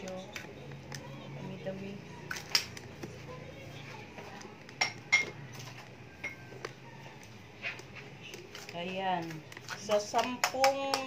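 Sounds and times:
metal kitchenware clinking: 4.8s - 6.5s.

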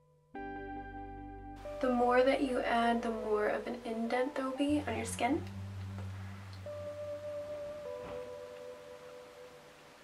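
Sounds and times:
soft music with ringing notes: 0.0s - 10.0s
low bass tone: 0.4s - 8.9s.

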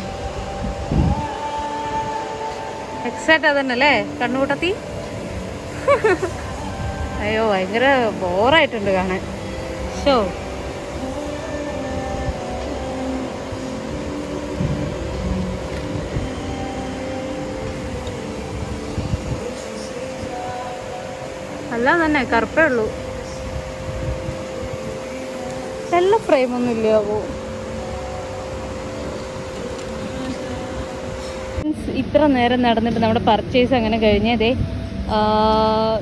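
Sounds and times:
faint held tone: 0.0s - 31.8s
ventilation rumble and hum: 0.0s - 36.0s.

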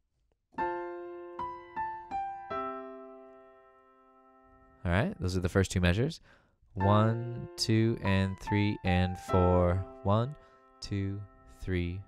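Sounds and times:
piano melody over chord: 0.6s - 5.5s, 6.8s - 12.0s.

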